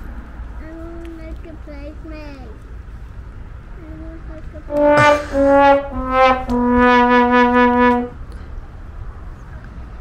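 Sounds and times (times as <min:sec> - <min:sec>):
outdoor background hiss: 0:00.0 - 0:10.0
sad trombone sound effect: 0:04.7 - 0:08.1.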